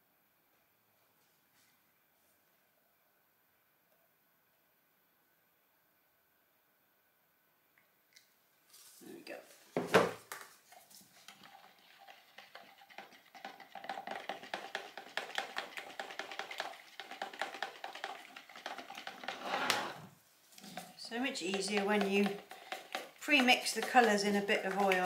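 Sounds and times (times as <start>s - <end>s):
plastic jug set down on worktop: 9.8s - 10.4s
spatula stirring in plastic jug: 10.7s - 25.0s.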